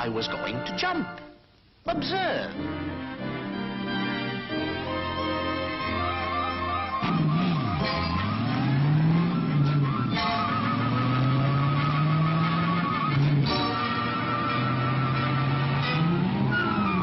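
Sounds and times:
cartoon music: 0:04.7 - 0:17.0
engine-like revving sound effect: 0:07.0 - 0:17.0.

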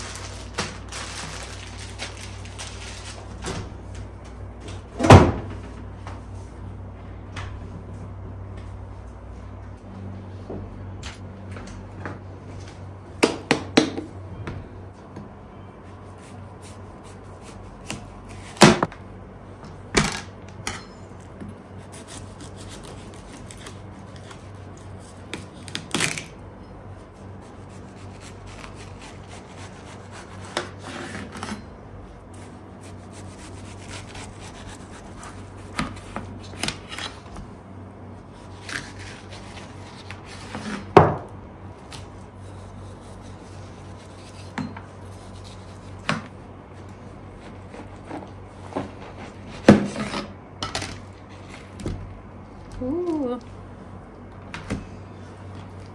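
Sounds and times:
knife slicing watermelon rind: 0:21.8 - 0:26.3, 0:32.4 - 0:37.3, 0:38.3 - 0:41.0.

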